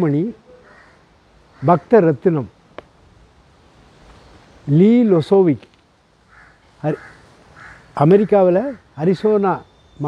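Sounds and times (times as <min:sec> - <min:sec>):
crow cawing: 0:00.5 - 0:01.9, 0:06.2 - 0:09.0.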